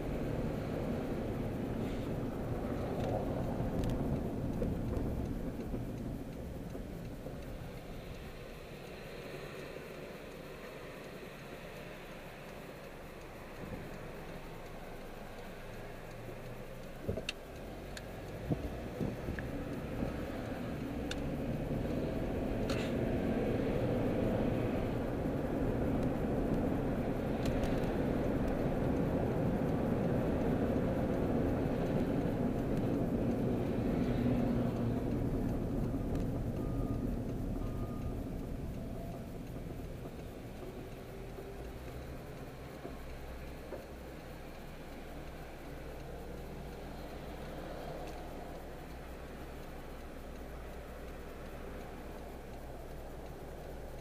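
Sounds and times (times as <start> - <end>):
car engine and road rumble: 0.0 - 54.0.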